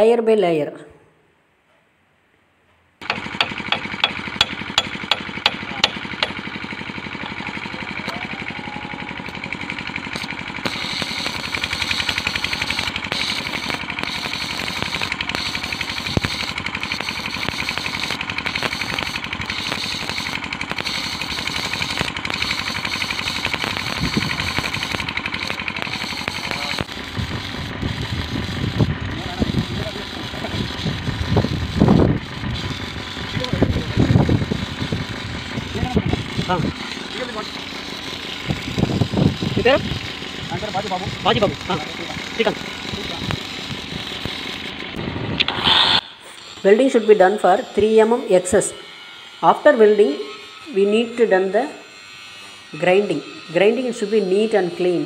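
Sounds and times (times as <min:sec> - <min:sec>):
welding arc crackling sizzle: 0:03.0 - 0:55.0.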